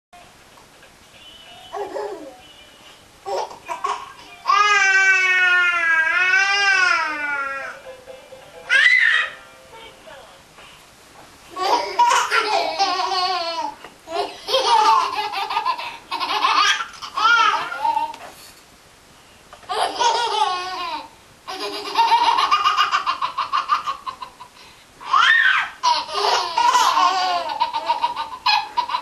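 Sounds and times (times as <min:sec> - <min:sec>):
toddlers giggling: 0:01.8 - 0:02.3, 0:11.5 - 0:18.2, 0:19.7 - 0:29.0.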